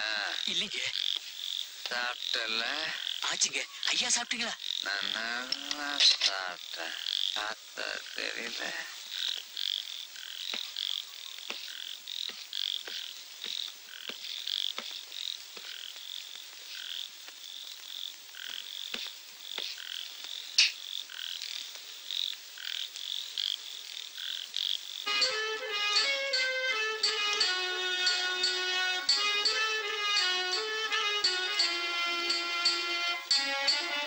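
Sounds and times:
frogs chirping: 0.0 - 29.2
instrumental music: 25.0 - 34.0.

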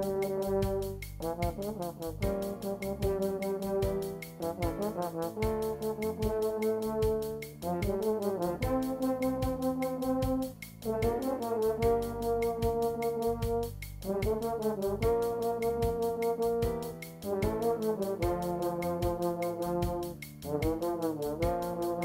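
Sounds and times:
brass playing bossa nova melody: 0.0 - 22.0
steady light beat: 0.0 - 22.0.

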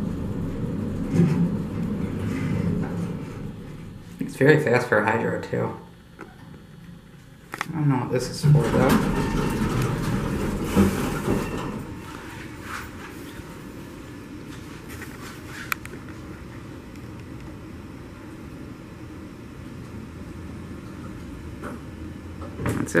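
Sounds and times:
elevator doors sliding closed: 0.0 - 4.2, 8.2 - 13.6
steady low hum: 0.0 - 23.0.

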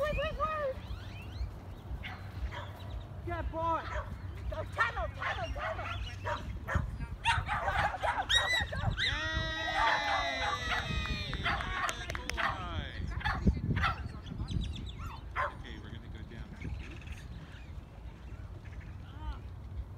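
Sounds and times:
dogs barking and yelping: 2.0 - 3.0, 3.8 - 14.2, 14.9 - 15.6.

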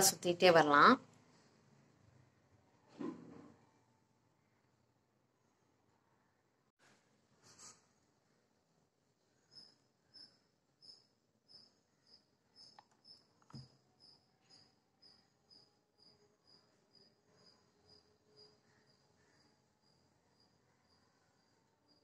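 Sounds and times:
faint high-pitched chirps: 9.2 - 22.0.

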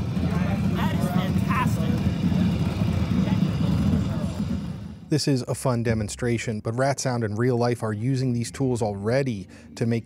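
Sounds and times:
deep bass rumble: 0.0 - 9.7.

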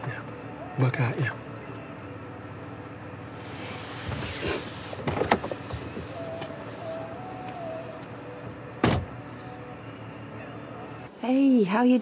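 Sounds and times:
car door shutting thud: 5.0 - 6.1, 8.4 - 9.2
car door clicks: 5.0 - 6.5, 8.8 - 9.1.

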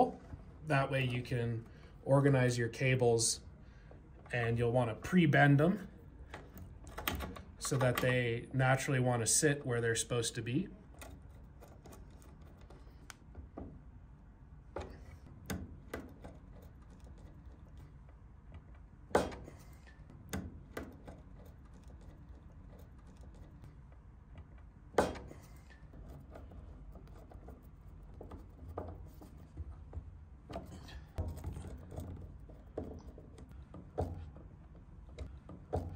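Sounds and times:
low room hum: 0.0 - 35.9.

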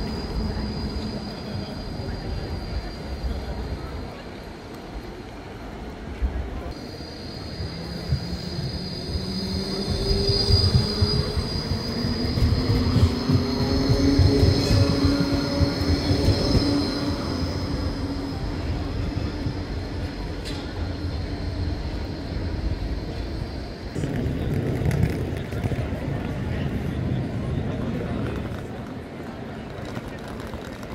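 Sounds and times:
tram wheels squealing on rails: 0.0 - 5.8, 6.6 - 30.9.

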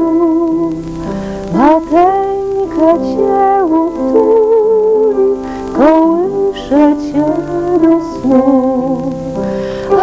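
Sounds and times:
upright piano accompaniment: 0.0 - 10.0
woman singing a lullaby: 0.0 - 10.0.

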